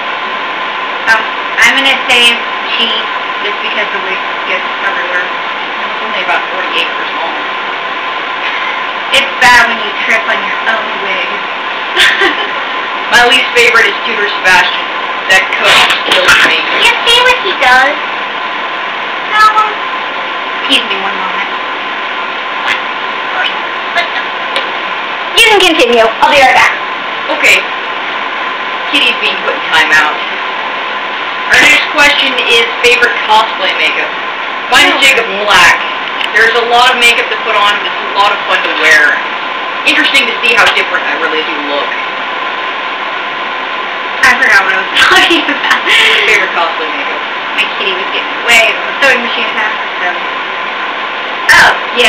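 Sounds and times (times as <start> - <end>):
faint steady hum: 0.0 - 52.0
steady background hiss: 0.0 - 52.0.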